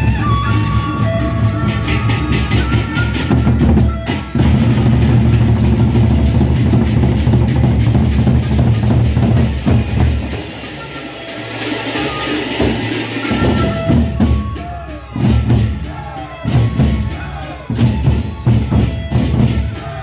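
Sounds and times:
cymbals clashing: 0.0s - 20.0s
barrel drums beaten: 1.0s - 10.8s, 12.3s - 20.0s.

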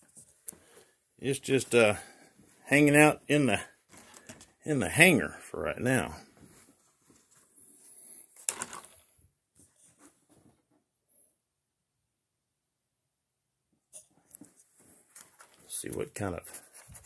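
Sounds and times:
faint handling rustles: 6.2s - 9.0s, 14.0s - 17.0s.

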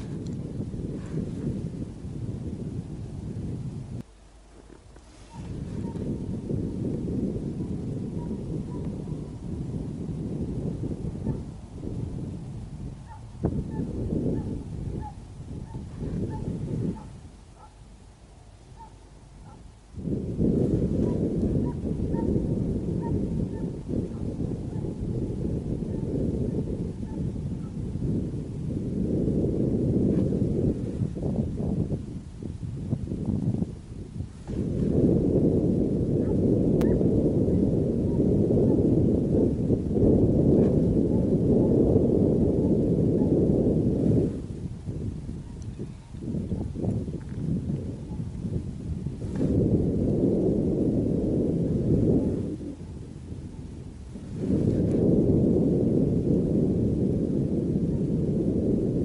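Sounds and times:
wind rumble on microphone: 0.0s - 59.0s
distant hounds baying: 13.0s - 17.8s, 18.8s - 19.7s.

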